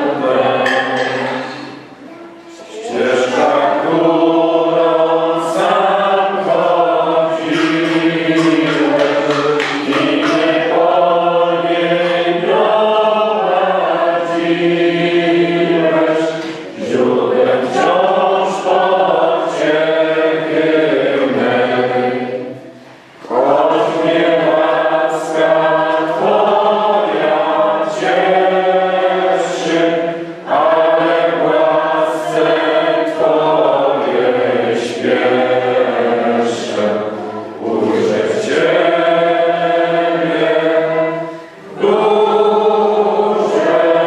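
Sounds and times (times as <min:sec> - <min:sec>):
choir singing: 0:00.0 - 0:44.0.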